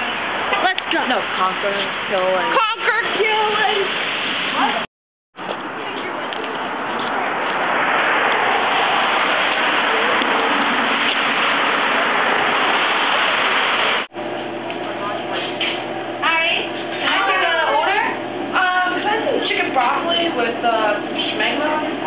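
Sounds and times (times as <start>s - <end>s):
loud rushing noise: 6.5s - 14.1s.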